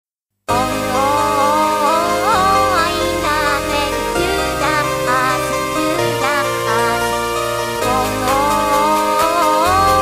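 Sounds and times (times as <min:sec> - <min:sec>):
electronic remix music: 0:00.5 - 0:10.0.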